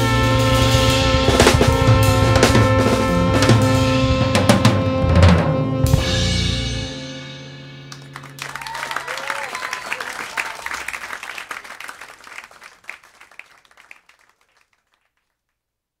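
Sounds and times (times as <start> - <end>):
audience applauding: 7.9 - 15.4
audience whooping: 8.0 - 15.0.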